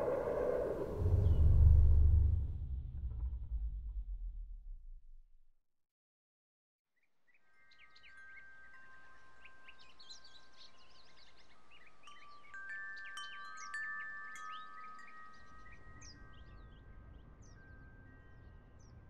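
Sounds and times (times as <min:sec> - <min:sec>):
metal wind chime ringing: 0:07.7 - 0:18.9.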